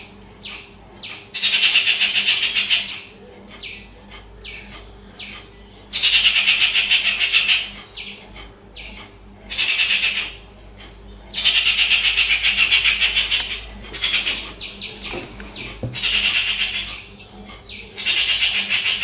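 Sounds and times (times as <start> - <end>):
birds rattling chatter: 0.0 - 19.0.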